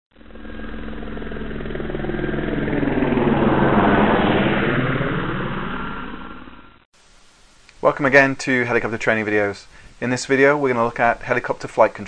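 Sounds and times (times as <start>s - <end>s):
helicopter flying by: 0.1s - 6.9s.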